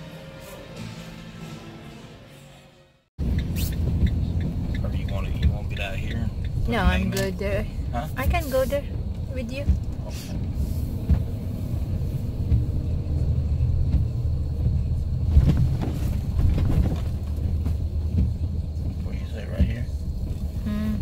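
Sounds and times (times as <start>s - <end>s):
road noise: 0.0s - 21.0s
vehicle engine rumble: 3.2s - 21.0s.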